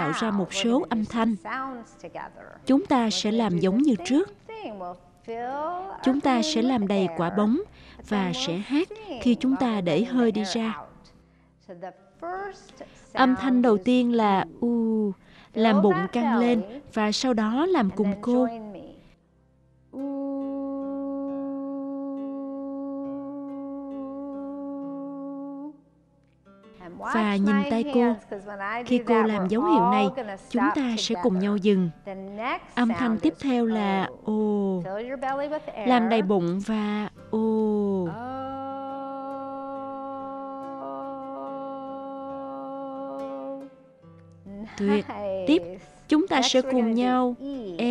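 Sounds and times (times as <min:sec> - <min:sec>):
woman singing long oo vowel: 0:19.9 - 0:25.8, 0:29.0 - 0:30.2, 0:35.9 - 0:43.8.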